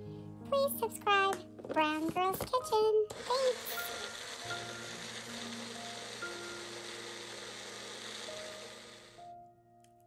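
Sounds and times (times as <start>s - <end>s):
blender motor whirring: 3.1s - 9.3s.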